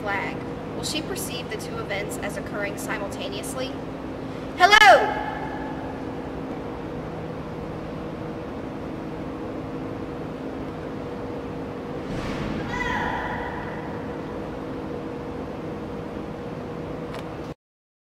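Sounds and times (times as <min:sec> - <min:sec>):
low hum: 0:00.0 - 0:17.6
woman shouting with echo: 0:04.6 - 0:05.8, 0:12.6 - 0:14.2.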